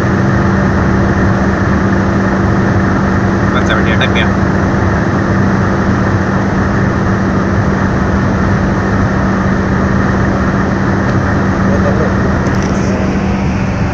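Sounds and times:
constant road noise rush: 0:00.0 - 0:13.9
car engine at high revs: 0:00.1 - 0:13.9.

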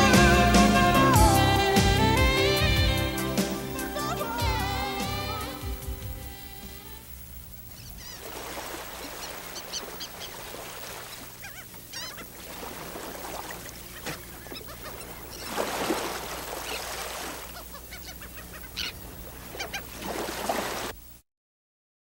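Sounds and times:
birds calling: 0:00.0 - 0:20.9.

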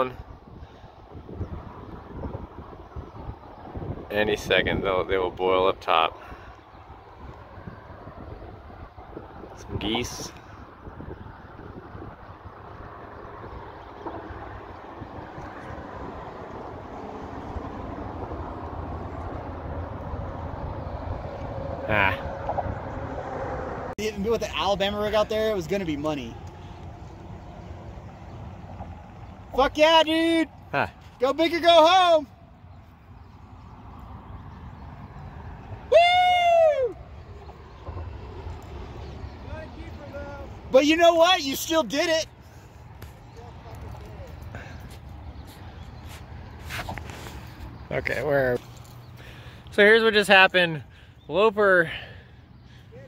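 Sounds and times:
wind buffeting microphone: 0:00.0 - 0:31.3
loud whooping shout: 0:35.8 - 0:37.2.

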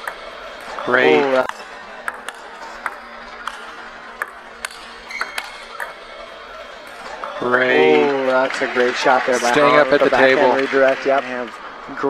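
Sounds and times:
table tennis ball hits: 0:00.0 - 0:06.0.

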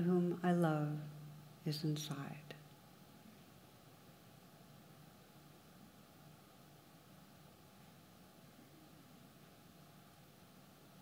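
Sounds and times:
woman speaking softly: 0:00.0 - 0:02.7.

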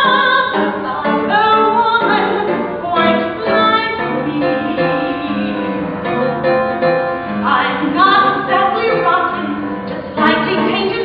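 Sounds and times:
woman singing: 0:00.0 - 0:06.2, 0:07.4 - 0:11.0.

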